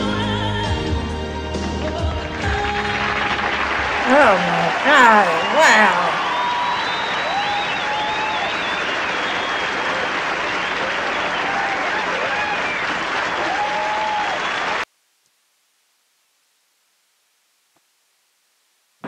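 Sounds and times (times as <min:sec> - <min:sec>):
audience applauding: 0:02.2 - 0:14.8
cheers: 0:03.4 - 0:14.8
whistles: 0:06.2 - 0:14.7.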